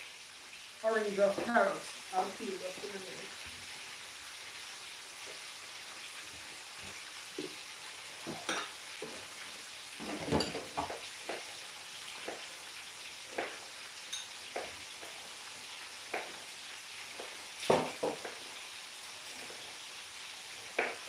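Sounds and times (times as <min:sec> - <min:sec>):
fish sizzling in hot oil: 0:00.0 - 0:21.0.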